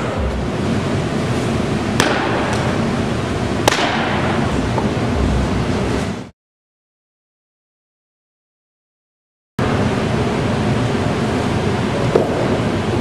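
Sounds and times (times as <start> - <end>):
rushing room noise: 0.0 - 6.3, 9.6 - 13.0
sharp ringing cracks: 3.6 - 4.3.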